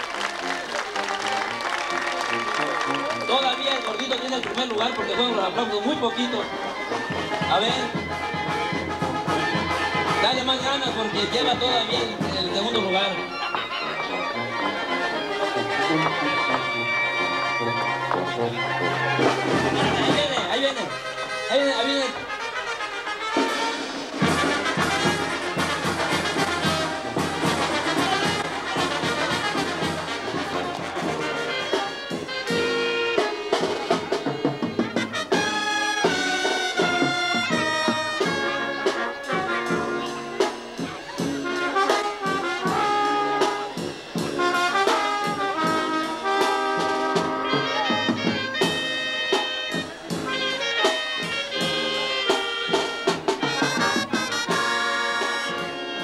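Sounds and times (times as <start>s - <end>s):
brass band music: 0.0s - 56.0s.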